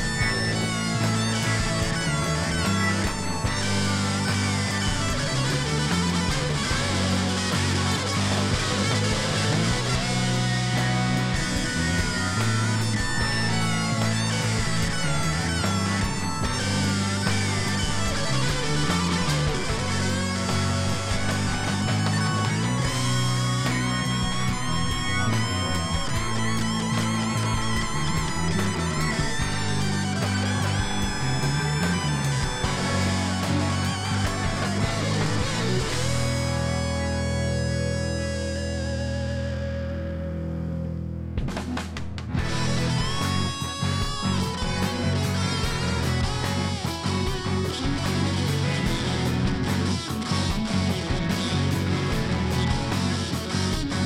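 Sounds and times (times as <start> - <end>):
drums: 0.0 - 39.6, 41.2 - 54.0
bass guitar: 0.0 - 54.0
lead electric guitar: 0.0 - 54.0.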